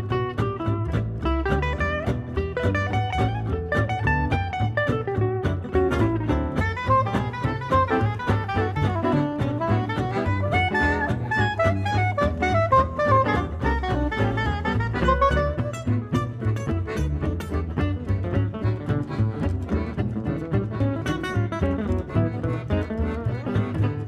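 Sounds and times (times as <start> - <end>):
accordion: 0.0 - 24.0
bass line: 0.0 - 24.0
strummed acoustic guitars: 0.0 - 24.0
saxophone melody: 6.0 - 24.0.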